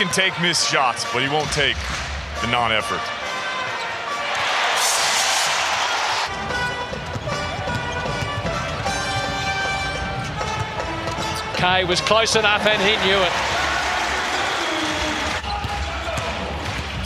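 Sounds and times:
arena music: 0:00.0 - 0:16.8
crowd noise rush: 0:04.2 - 0:06.3.

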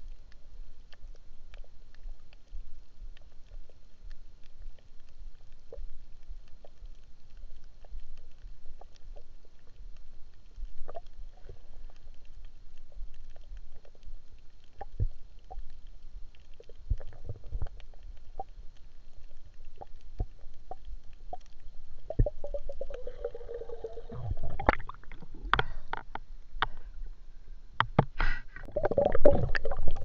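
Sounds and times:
water gurgle: 0:00.0 - 0:27.5, 0:28.5 - 0:30.0
water sloshing and rumbling: 0:14.8 - 0:18.6, 0:19.3 - 0:27.5, 0:28.6 - 0:30.0
small clicks and knocks: 0:24.6 - 0:26.8.

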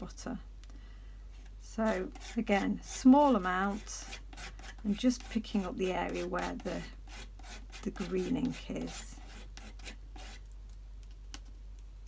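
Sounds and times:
low steady hum: 0:00.0 - 0:12.0
tool scraping on mat: 0:01.4 - 0:10.4.

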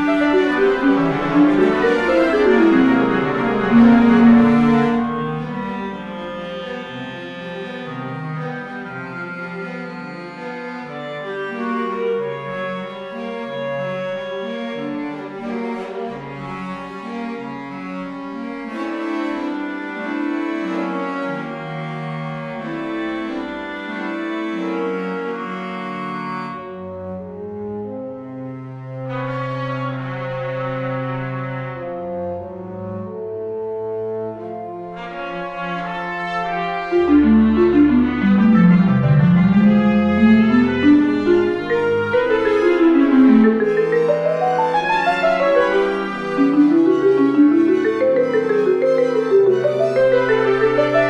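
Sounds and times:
chamber ensemble slow chords: 0:00.0 - 0:08.9, 0:36.5 - 0:51.0
classical chamber music strings: 0:00.0 - 0:51.0.

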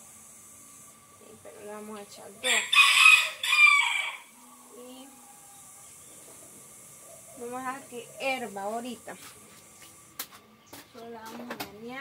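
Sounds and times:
rooster crowing: 0:02.4 - 0:06.0.

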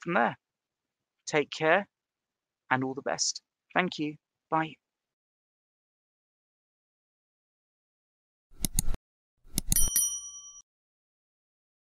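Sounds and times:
quick clicks: 0:08.6 - 0:09.8
bright bell ding: 0:09.7 - 0:10.6.

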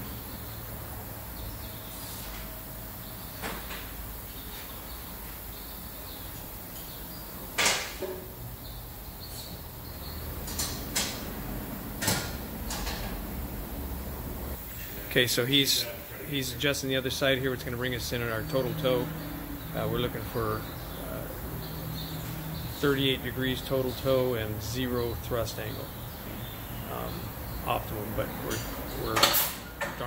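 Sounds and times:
low shop hum: 0:00.0 - 0:30.0.

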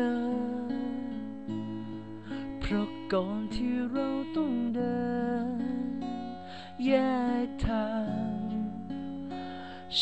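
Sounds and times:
man singing: 0:00.0 - 0:01.2, 0:02.3 - 0:08.9
acoustic guitar: 0:00.0 - 0:10.0.

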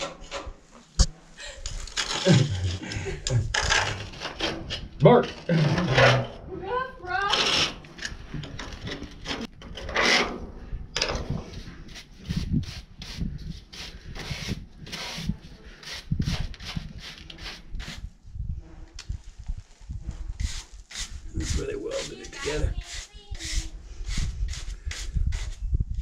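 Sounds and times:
hand tool scraping steel: 0:01.6 - 0:06.4, 0:07.2 - 0:10.5, 0:20.4 - 0:25.6.

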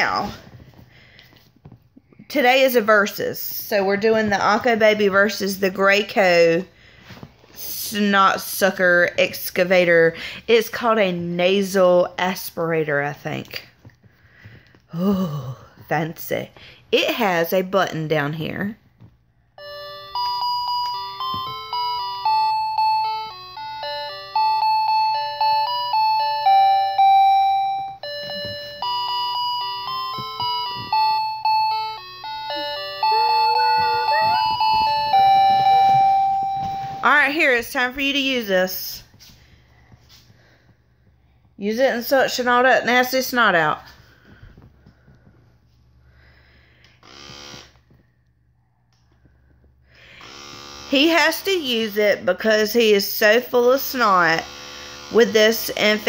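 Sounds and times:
electronic lullaby melody of beeps: 0:19.6 - 0:37.1
small electric motor buzzing: 0:47.0 - 0:47.8, 0:50.2 - 0:51.1.

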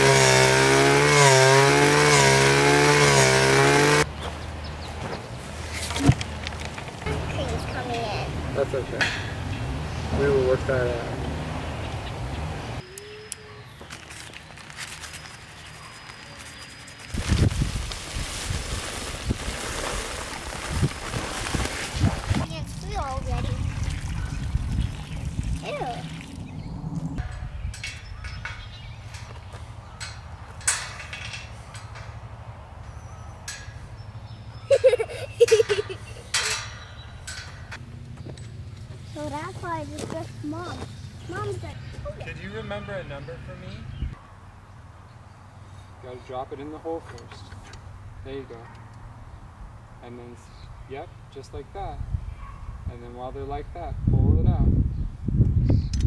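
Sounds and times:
liquid pouring and sloshing: 0:23.4 - 0:26.5.

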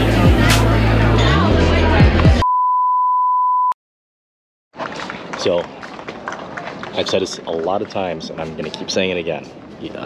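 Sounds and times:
background music: 0:00.0 - 0:02.4
electronic beep tone: 0:02.4 - 0:03.8.

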